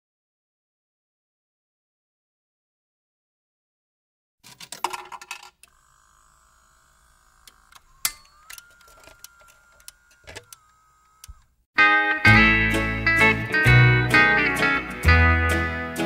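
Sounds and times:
coins rattling into jukebox: 0:04.4 - 0:05.7
sharp mechanical clicks: 0:04.4 - 0:11.6
jukebox mechanism whining: 0:04.4 - 0:11.7
steel-guitar country music: 0:11.8 - 0:16.0.

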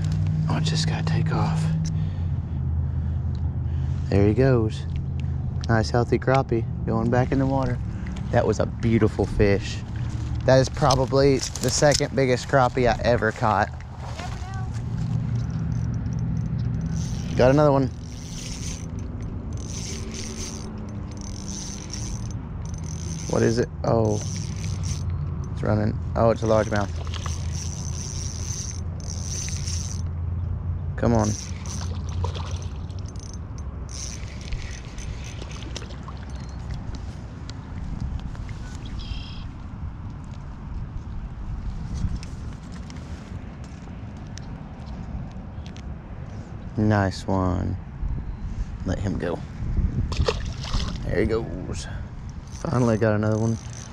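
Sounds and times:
fishing reel gears whirring: 0:14.6 - 0:30.1, 0:31.1 - 0:36.8, 0:52.2 - 0:53.9.

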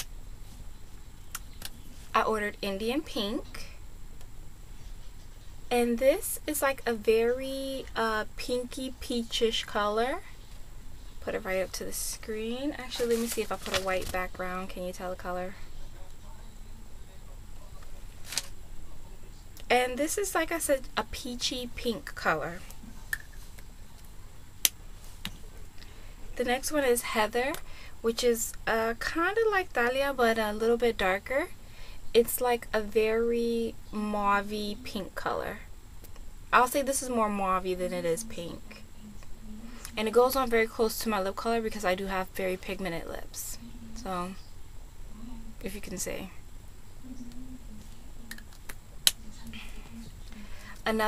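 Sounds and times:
faint low hum: 0:00.0 - 0:51.0.

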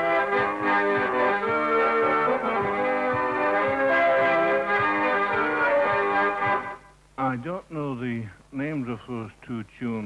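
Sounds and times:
accordion folk tune: 0:00.0 - 0:07.0.

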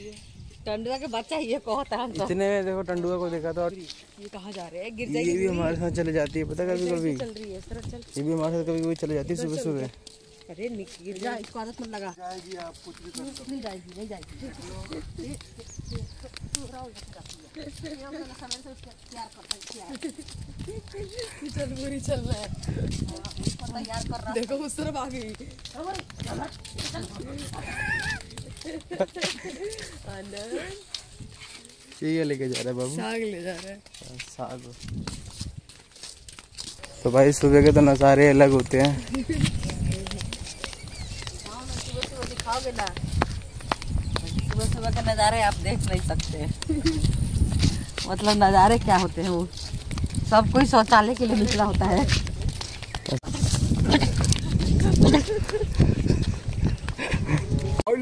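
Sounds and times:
wind on microphone: 0:00.0 - 0:02.8, 0:05.0 - 0:08.2, 0:14.2 - 0:18.9, 0:20.1 - 0:31.8, 0:34.0 - 0:35.8, 0:36.6 - 0:57.9
people laughing: 0:27.0 - 0:30.8, 0:53.2 - 0:57.8.

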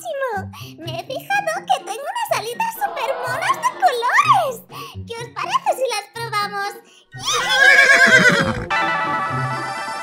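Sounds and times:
music: 0:00.0 - 0:10.0
horse whinny: 0:02.7 - 0:04.0, 0:07.2 - 0:08.7.

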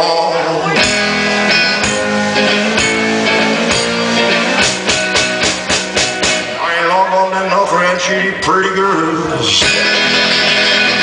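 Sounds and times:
electric guitar strumming: 0:00.0 - 0:11.0
drum beats: 0:00.8 - 0:07.0.

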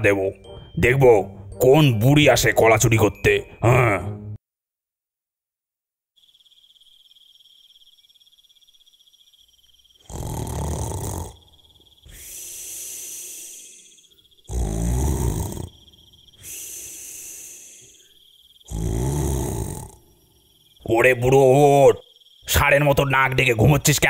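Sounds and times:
high cricket trill: 0:06.2 - 0:24.0
cartoon man snoring: 0:10.0 - 0:20.2.

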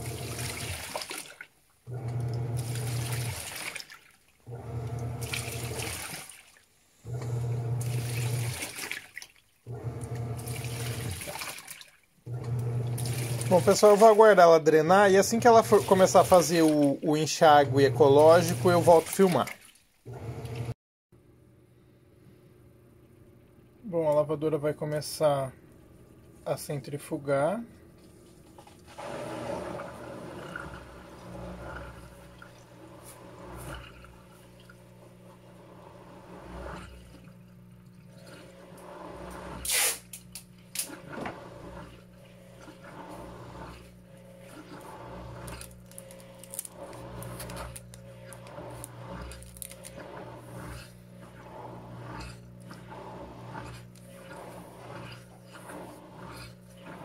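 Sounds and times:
water swishing: 0:00.0 - 0:06.8, 0:07.4 - 0:20.8, 0:28.2 - 0:39.7, 0:40.9 - 0:57.0
washing machine motor hum: 0:00.0 - 0:57.0.

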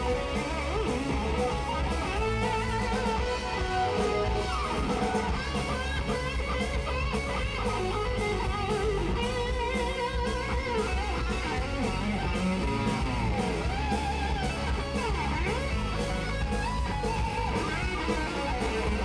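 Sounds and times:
bass guitar: 0:00.0 - 0:19.0
bending lead guitar line: 0:00.0 - 0:19.0
electric guitar: 0:00.0 - 0:19.0
steady drum beat: 0:00.0 - 0:19.0.

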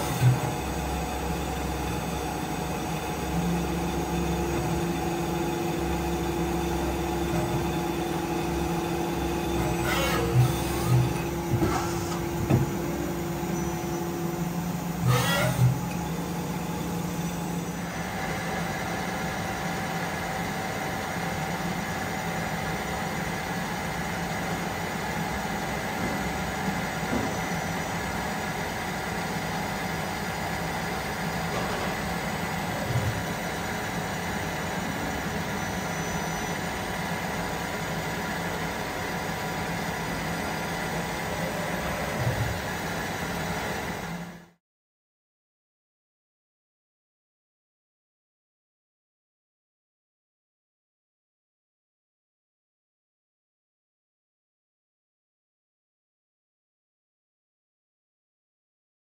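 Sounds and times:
lathe machine hum: 0:00.0 - 0:44.5.

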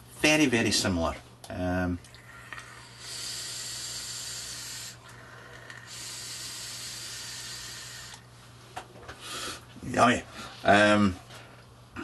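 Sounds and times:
vape draw hiss: 0:02.8 - 0:08.2.

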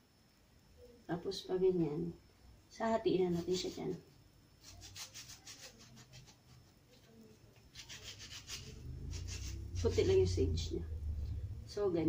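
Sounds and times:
knife scraping through fruit: 0:04.6 - 0:06.6, 0:07.7 - 0:10.4.

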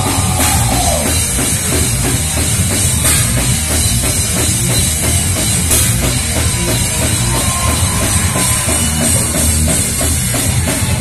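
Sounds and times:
fast drum beat: 0:00.0 - 0:11.0
live metal band playing: 0:00.0 - 0:11.0.

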